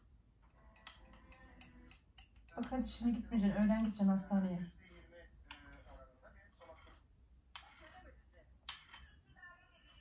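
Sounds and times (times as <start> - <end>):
metal spoon scraping soup bowl: 0.5 - 10.0.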